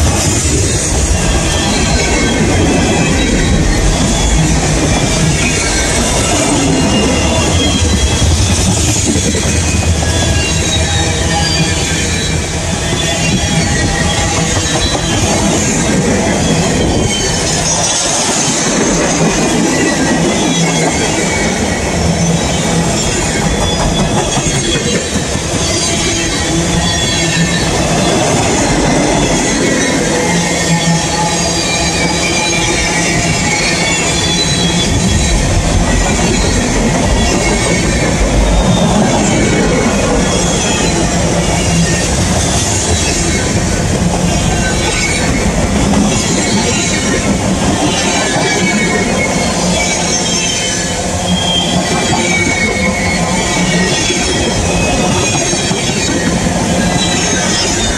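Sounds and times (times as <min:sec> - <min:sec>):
train wheels rumbling on rail: 0:00.0 - 0:57.9
wheel squeal: 0:00.1 - 0:57.9.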